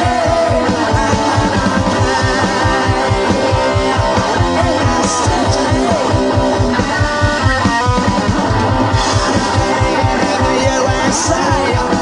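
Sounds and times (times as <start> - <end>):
held guitar notes: 0.0 - 12.0
punk rock band playing live: 0.0 - 12.0.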